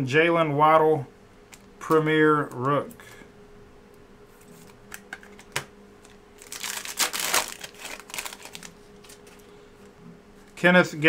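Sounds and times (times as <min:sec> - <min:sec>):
cards rustling against plastic: 0:04.4 - 0:09.6.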